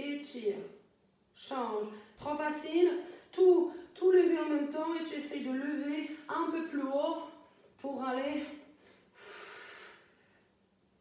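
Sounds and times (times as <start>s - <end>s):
woman's sharp breath: 8.8s - 10.6s.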